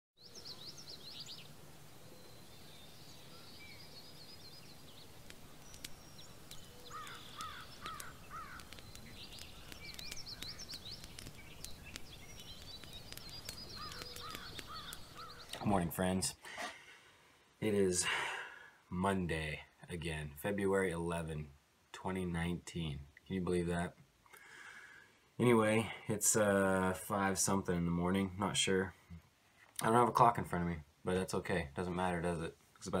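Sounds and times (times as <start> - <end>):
songbirds chirping and singing: 0.2 - 16.3
steady low hiss: 0.2 - 33.0
man's voice: 15.6 - 16.4, 25.4 - 29.0.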